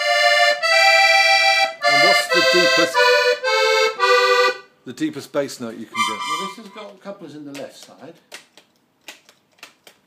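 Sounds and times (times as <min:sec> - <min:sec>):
accordion held notes: 0:00.0 - 0:04.8, 0:05.9 - 0:06.9.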